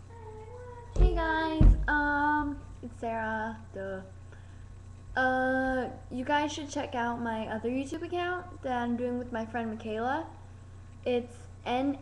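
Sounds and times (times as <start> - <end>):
girl singing held notes: 0.0 - 2.6
short thump: 1.0 - 2.0.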